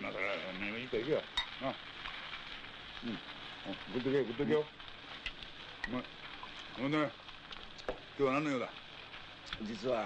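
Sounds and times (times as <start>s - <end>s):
food sizzling on a grill: 0.0s - 10.0s.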